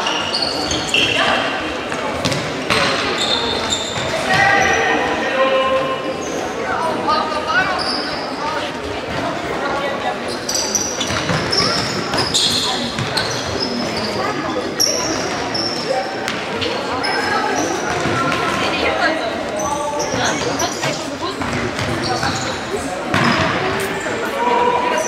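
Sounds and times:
shoes squeaking on floor: 0.0 - 5.0, 7.5 - 8.7, 10.2 - 18.7, 19.5 - 24.2
murmur of spectators' voices: 0.0 - 25.0.

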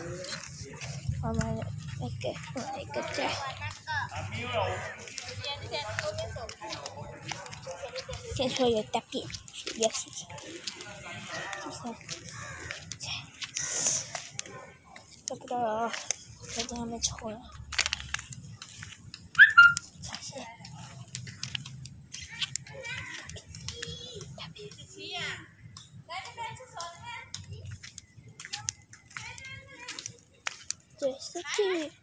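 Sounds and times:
flip-flop footsteps: 0.0 - 24.9, 25.7 - 32.0
people and children talking: 0.0 - 32.0.

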